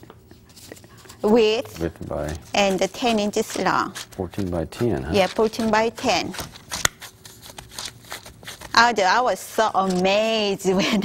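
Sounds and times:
hands patting dough: 0.0s - 10.7s
paper and gloves crinkling: 0.0s - 11.0s.

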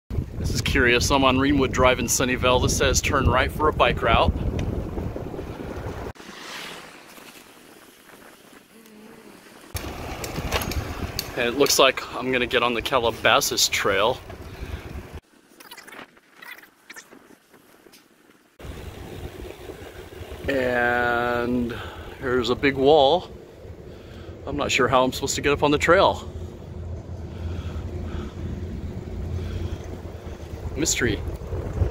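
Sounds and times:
wind buffeting microphone: 0.1s - 6.2s, 7.5s - 15.2s, 18.6s - 31.9s.

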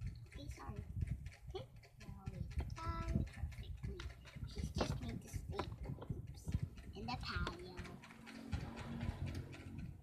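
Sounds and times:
plastic toys tapping on table: 0.1s - 10.0s.

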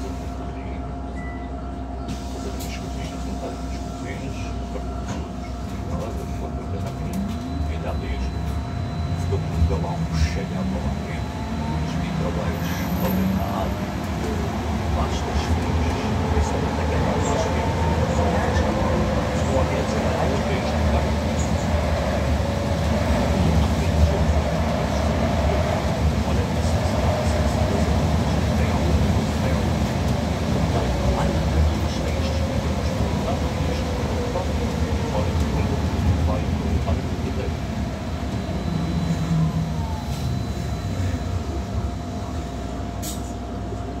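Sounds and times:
road rumble: 0.0s - 44.0s.

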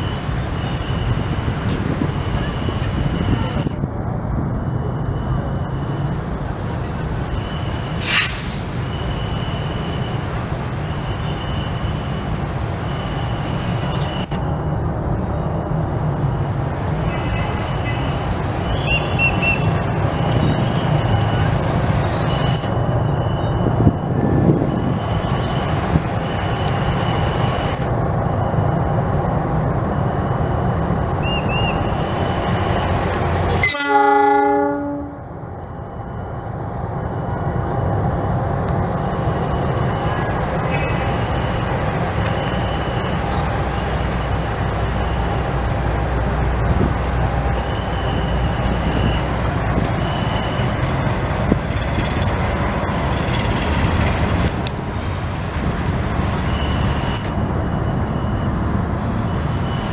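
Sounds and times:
locomotive engine rumble: 0.0s - 59.9s
high beeping: 7.1s - 8.0s, 8.8s - 33.9s, 34.6s - 38.2s, 38.9s - 51.2s, 56.2s - 59.9s
locomotive horn blast: 33.5s - 35.3s.

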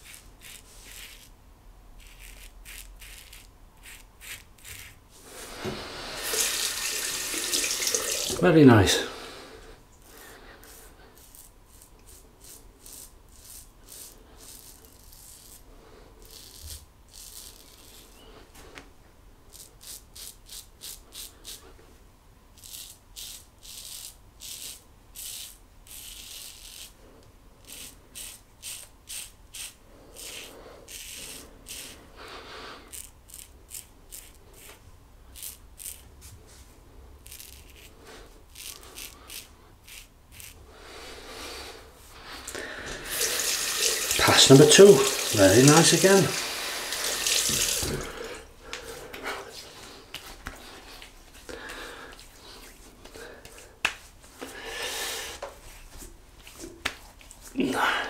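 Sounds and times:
razor scraping stubble: 0.0s - 1.4s, 2.0s - 5.0s, 10.0s - 18.2s, 19.5s - 21.6s, 22.6s - 27.0s, 27.6s - 32.1s, 32.8s - 36.4s, 37.2s - 40.6s, 43.0s - 48.3s.

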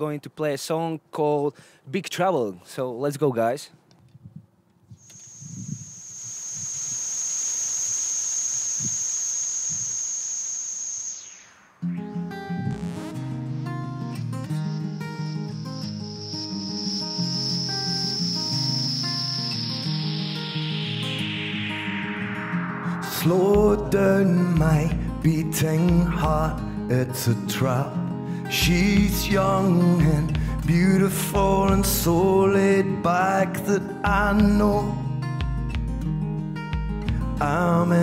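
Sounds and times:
steady hiss: 5.0s - 12.5s, 13.1s - 22.3s
high tone sliding down: 5.0s - 26.6s
high held tone: 5.0s - 26.8s
acoustic guitars strumming: 11.8s - 38.0s.

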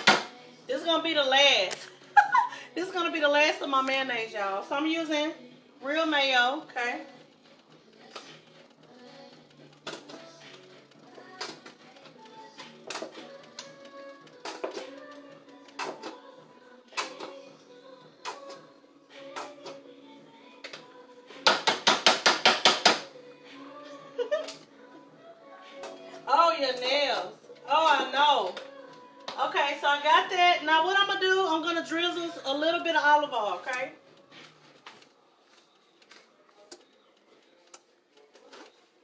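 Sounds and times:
background music: 0.0s - 39.0s.

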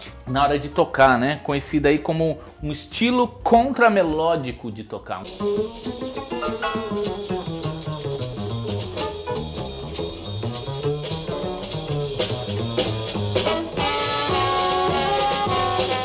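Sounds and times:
plucked double bass: 5.2s - 16.0s
saxophone held notes: 13.4s - 16.0s.

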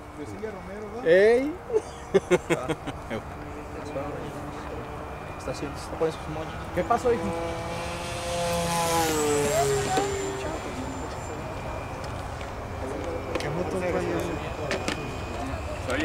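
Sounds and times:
model airplane flying past: 3.2s - 16.0s.

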